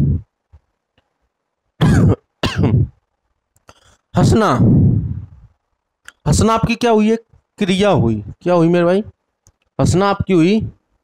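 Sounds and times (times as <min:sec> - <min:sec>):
man clearing his throat: 0:01.8 - 0:03.0.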